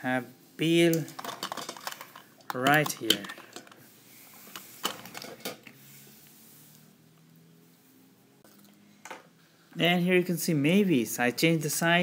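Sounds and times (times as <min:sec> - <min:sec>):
metal toys clicking together: 0:00.9 - 0:03.8.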